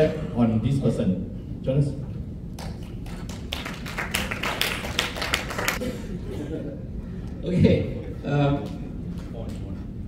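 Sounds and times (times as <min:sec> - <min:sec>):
small audience clapping: 0:02.6 - 0:05.8.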